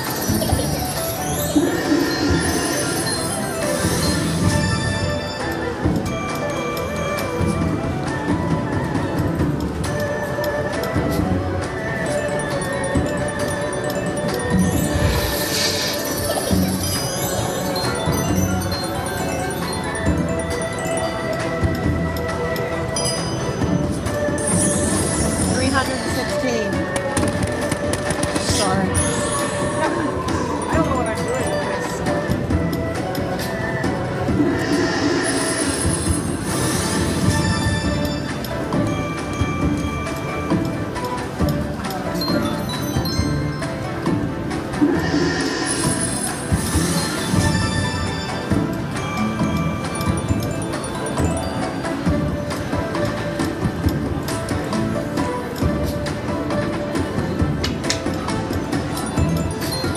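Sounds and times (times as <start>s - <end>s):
slot machine jingle: 0.0s - 8.3s, 11.6s - 59.9s.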